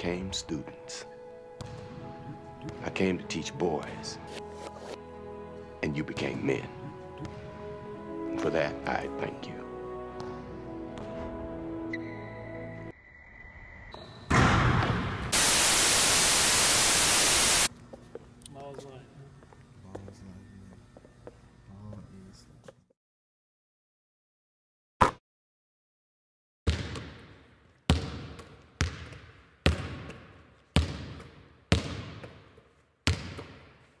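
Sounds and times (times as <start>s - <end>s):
basketball bouncing on hard floor: 1.6s - 2.0s, 26.7s - 33.8s
television static hiss: 15.4s - 17.7s.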